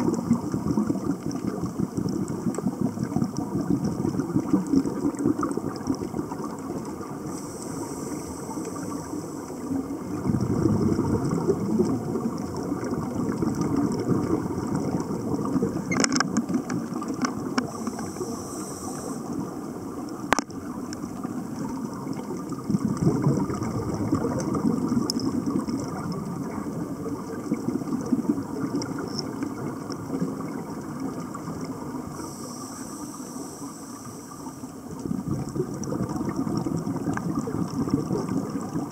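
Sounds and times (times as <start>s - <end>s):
low underwater rumble: 0.0s - 38.9s
regulator bubbles hissing: 0.0s - 38.9s.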